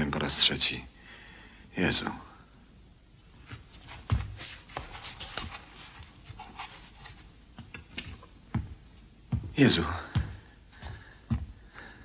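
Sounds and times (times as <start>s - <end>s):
man breathing heavily: 1.0s - 1.7s, 9.9s - 12.0s
small rustles and knocks: 3.3s - 11.6s.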